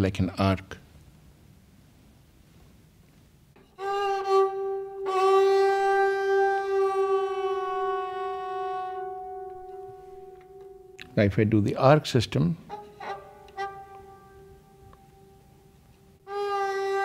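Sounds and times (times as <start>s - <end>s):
bowed sarangi note: 3.6s - 11.2s, 12.7s - 17.0s.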